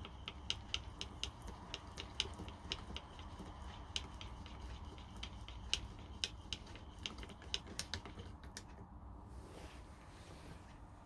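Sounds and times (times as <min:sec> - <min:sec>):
wooden engine clicks and knocks: 0:00.0 - 0:08.8.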